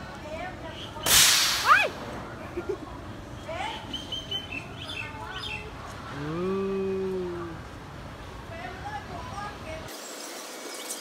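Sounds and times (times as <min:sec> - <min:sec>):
person's drawn-out voice: 0:06.2 - 0:07.6.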